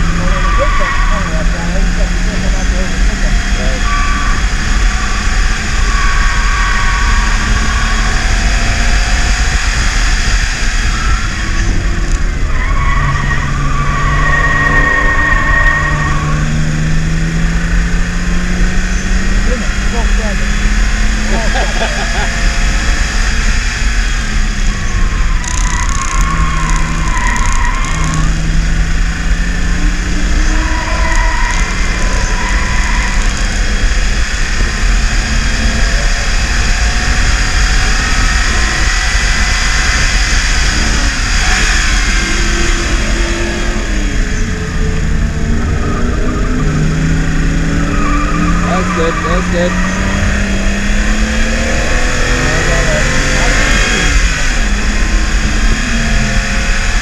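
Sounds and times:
car engine at speed: 0.0 - 57.0
road and wind noise: 0.0 - 57.0.

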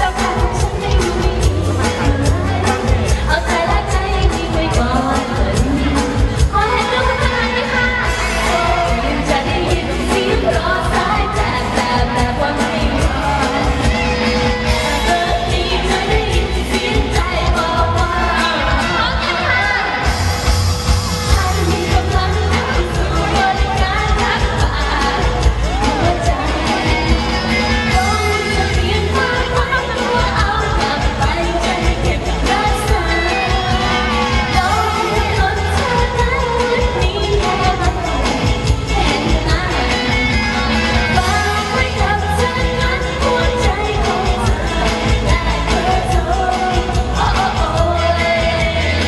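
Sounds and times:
amplified band with steady beat: 0.0 - 49.0
woman singing pop song: 0.0 - 49.0.

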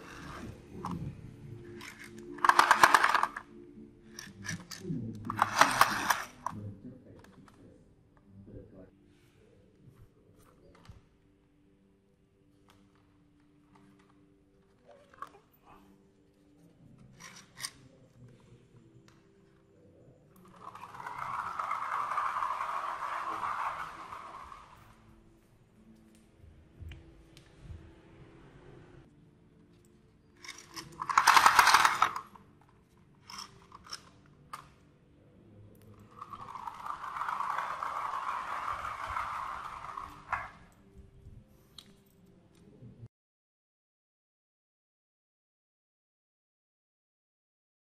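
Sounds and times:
plastic toy scraping: 0.0 - 1.1, 1.7 - 3.5, 4.2 - 6.6, 20.4 - 25.0, 30.4 - 32.3, 33.2 - 34.1, 36.1 - 40.8.

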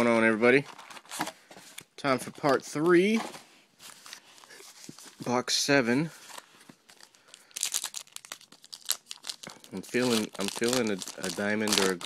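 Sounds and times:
wrapper crinkling: 6.3 - 12.0
wrapper tearing: 6.9 - 12.0.

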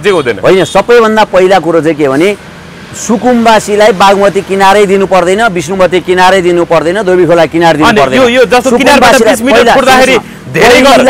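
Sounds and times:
man talking: 0.0 - 11.0
steady background noise: 0.0 - 11.0.

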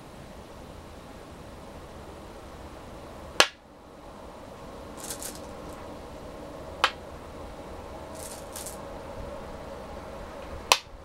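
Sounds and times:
faint hum: 0.0 - 11.0
soft scrapes: 8.2 - 8.8.

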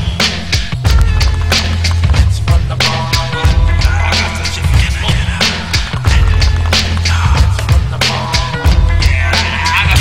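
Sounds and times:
heavy bass line: 0.0 - 10.0
steady drum beat: 0.0 - 10.0.

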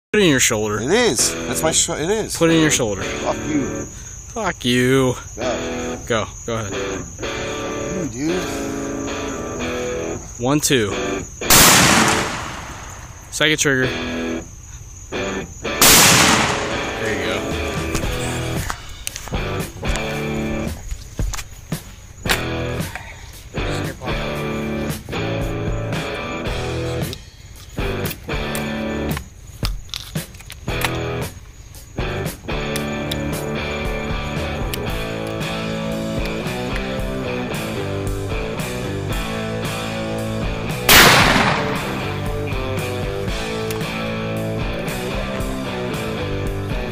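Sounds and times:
rock music with guitar: 8.6 - 10.2, 15.2 - 18.6, 19.4 - 20.8, 22.3 - 22.8, 23.6 - 27.1, 27.8 - 29.2, 30.7 - 31.3, 32.0 - 46.9
shotgun bang: 11.5 - 13.2, 15.8 - 17.3, 40.9 - 42.4.

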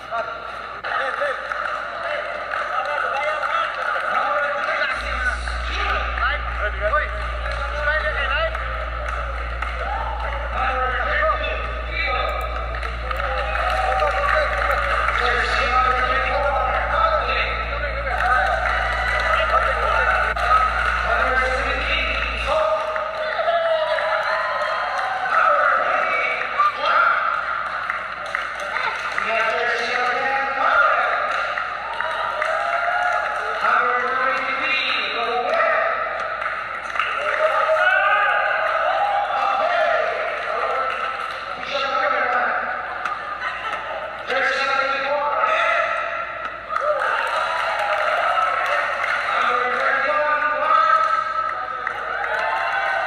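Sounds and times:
announcer over public address: 2.8 - 24.3.

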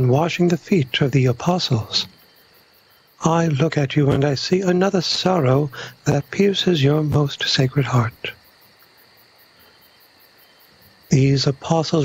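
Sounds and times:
person speaking: 0.0 - 2.1, 3.2 - 8.3, 11.1 - 12.0
low hiss: 0.0 - 12.0.

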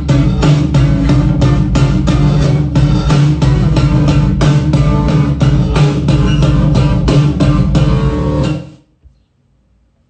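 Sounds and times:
strummed guitar music: 0.0 - 8.8.

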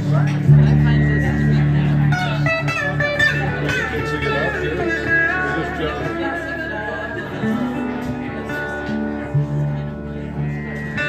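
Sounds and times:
acoustic guitar: 0.0 - 11.0
resonator guitar: 0.0 - 11.0.

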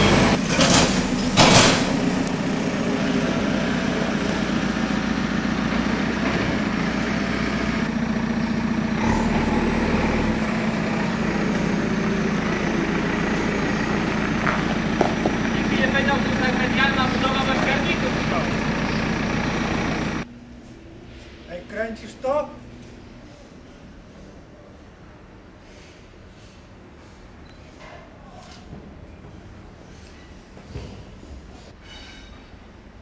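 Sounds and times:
diesel engine idling: 0.0 - 20.3.

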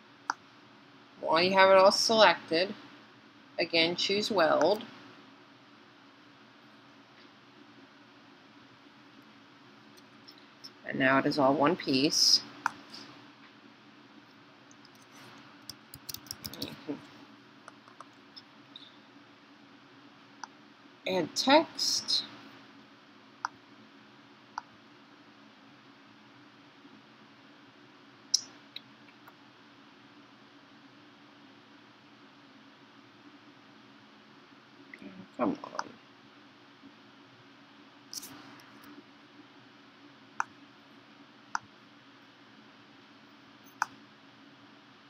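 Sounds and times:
low steady hum: 0.0 - 45.0
computer mouse clicks: 14.7 - 16.7.

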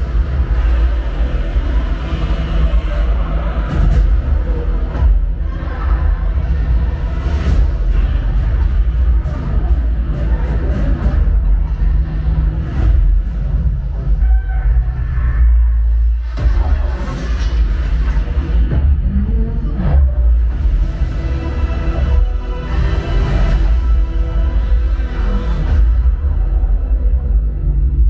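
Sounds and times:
deep bass rumble: 0.0 - 28.0
dramatic score music: 0.0 - 28.0.

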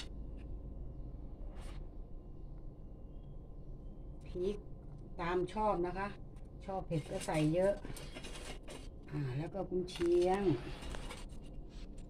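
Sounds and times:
woman speaking: 4.2 - 7.9, 9.1 - 10.8.

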